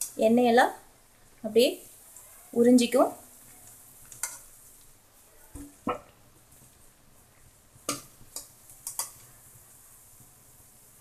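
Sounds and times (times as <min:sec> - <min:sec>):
oil sizzling: 0:00.0 - 0:11.0.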